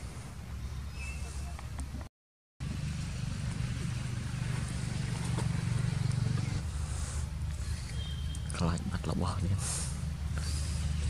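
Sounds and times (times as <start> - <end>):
vehicle engine droning: 0.0 - 11.0.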